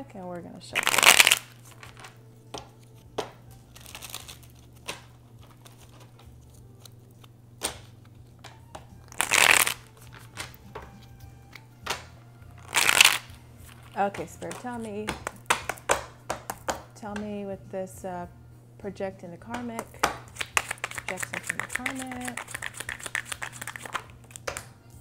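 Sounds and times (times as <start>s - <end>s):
cards being shuffled: 0.8s - 16.7s, 19.9s - 24.7s
card taps and clicks: 19.5s - 24.7s.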